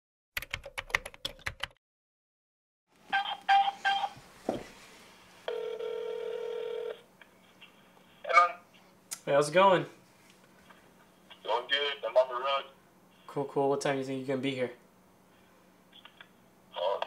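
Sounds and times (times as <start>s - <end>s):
telephone ringing tone: 5.5s - 7.1s.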